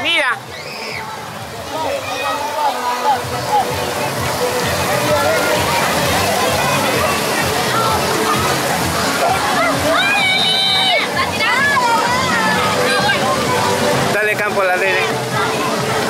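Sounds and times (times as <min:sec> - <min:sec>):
pool water splashing: 0:00.0 - 0:16.0
children's voices: 0:00.4 - 0:14.1, 0:15.1 - 0:16.0
background music: 0:01.1 - 0:16.0.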